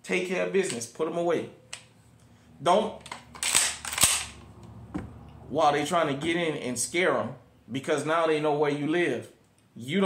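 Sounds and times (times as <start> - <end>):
shotgun action clacking shut: 3.0 - 4.4.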